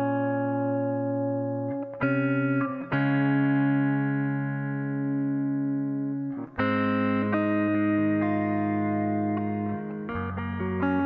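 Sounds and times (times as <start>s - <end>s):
electric guitar chords: 0.0s - 11.0s.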